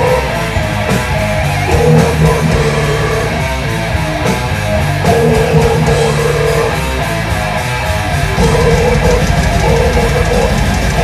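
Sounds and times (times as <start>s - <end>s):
death metal band playing live: 0.0s - 11.0s.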